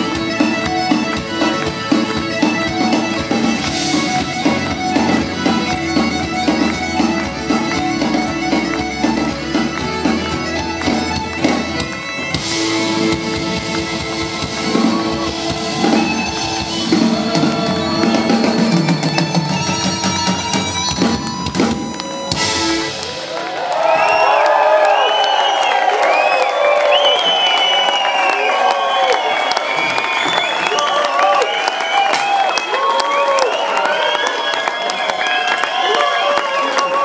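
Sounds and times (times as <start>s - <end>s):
folk band playing: 0.0s - 23.5s
audience cheering and whooping: 11.8s - 37.0s.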